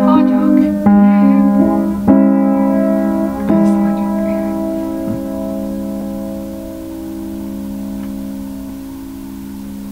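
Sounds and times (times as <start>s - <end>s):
sustained keyboard chord: 0.0s - 9.9s.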